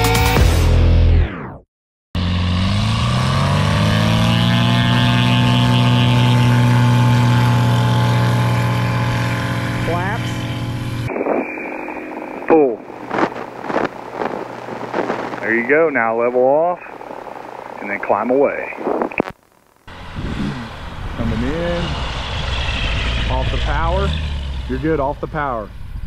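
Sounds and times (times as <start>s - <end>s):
light aircraft engine and propeller: 3.6s - 15.7s
spoken calls over intercom: 12.5s - 12.9s, 15.4s - 16.9s, 17.8s - 18.9s.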